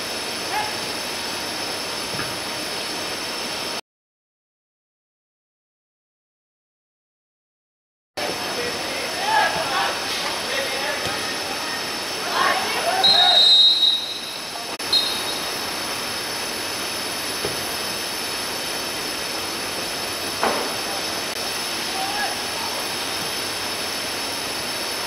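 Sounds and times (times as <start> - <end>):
outdoor hiss: 0.0 - 3.8, 8.2 - 25.0
players shouting: 8.2 - 14.8, 21.8 - 23.0
referee's whistle: 12.8 - 15.6.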